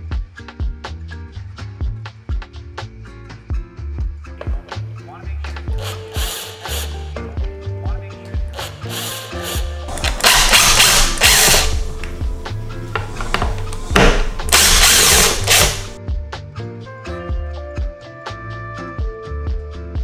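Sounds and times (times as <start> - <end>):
music with steady beat: 0.0 - 20.0
impact driver running: 5.8 - 7.0, 8.6 - 16.0.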